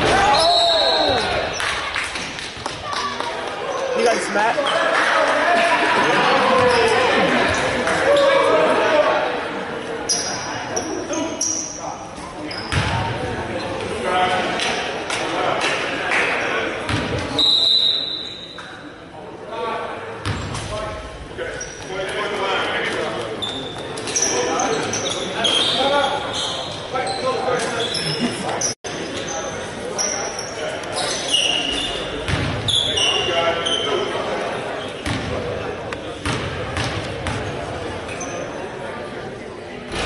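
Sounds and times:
people chatting: 0:00.0 - 0:17.6, 0:18.7 - 0:40.0.

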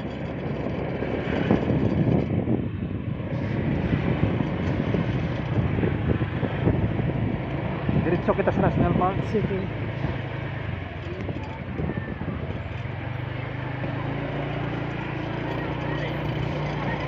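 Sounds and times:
motorbike engine running: 0:00.0 - 0:17.0.

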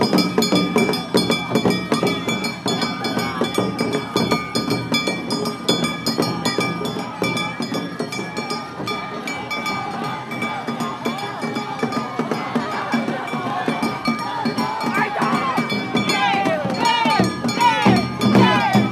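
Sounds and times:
drums beating fast rhythm: 0:00.0 - 0:18.9
small metal gongs ringing: 0:00.0 - 0:18.9.

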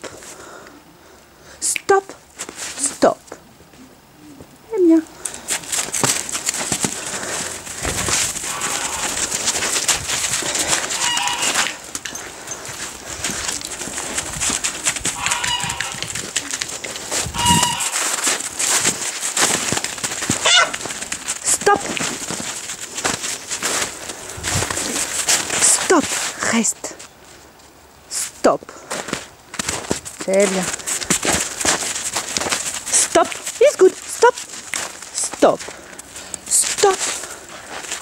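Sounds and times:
footsteps crunching in snow: 0:02.3 - 0:03.0, 0:05.1 - 0:27.8, 0:28.8 - 0:38.0
geese honking: 0:07.2 - 0:13.4, 0:14.9 - 0:16.6, 0:17.2 - 0:18.7, 0:20.4 - 0:20.8.

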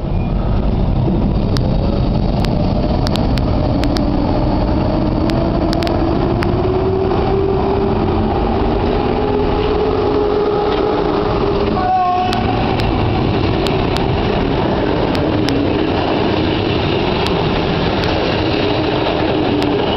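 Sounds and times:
electric locomotive rumbling: 0:00.0 - 0:19.9
sharp clicks: 0:01.5 - 0:04.2, 0:05.2 - 0:06.6.

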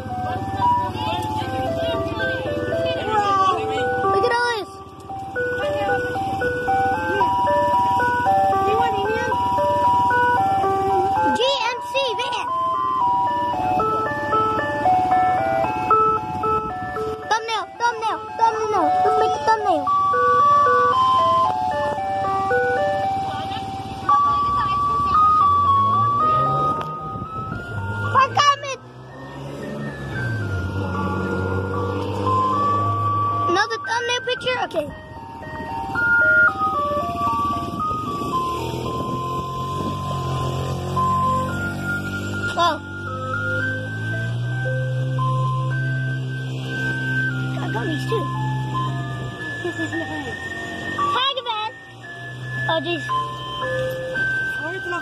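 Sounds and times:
ice cream truck jingle: 0:00.0 - 0:55.0.

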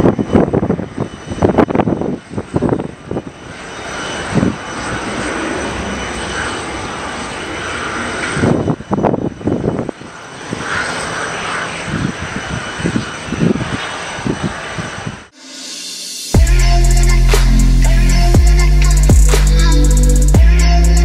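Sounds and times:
wind on microphone rumble: 0:00.0 - 0:15.3
jet airliner roar: 0:00.0 - 0:21.0.

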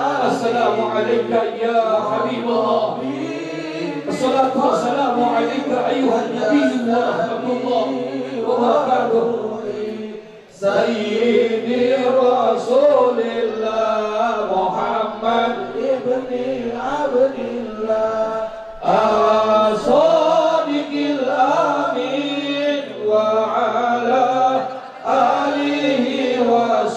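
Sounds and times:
men chanting devotional song over pa: 0:00.0 - 0:26.9.

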